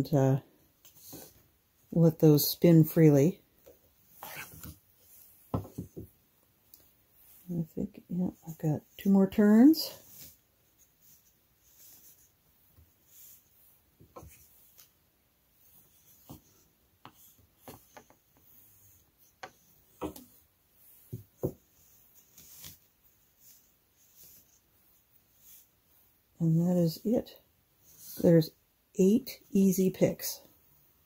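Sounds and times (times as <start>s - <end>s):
weaving cards clicking and rubbing: 4.0s - 6.0s, 15.6s - 25.8s.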